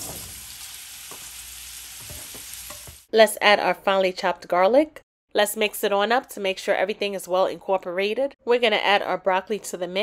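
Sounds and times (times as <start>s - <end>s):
mushrooms sizzling in oil: 0.0s - 3.1s.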